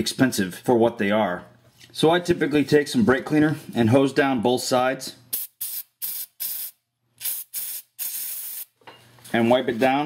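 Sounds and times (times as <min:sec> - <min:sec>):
aerosol can spraying: 0:05.3 - 0:08.8.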